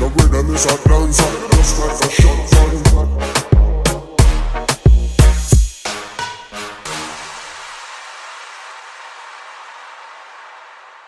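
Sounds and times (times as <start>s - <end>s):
hissing white noise wash: 7.2s - 11.0s.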